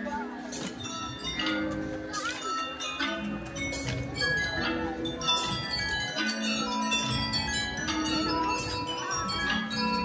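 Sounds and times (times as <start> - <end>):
bell lyres ringing: 0.5 - 10.0.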